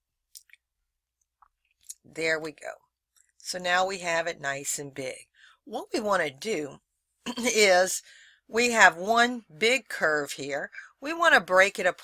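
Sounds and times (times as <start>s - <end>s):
person speaking: 1.8s - 2.8s, 3.4s - 12.0s
intake of breath: 8.0s - 8.5s.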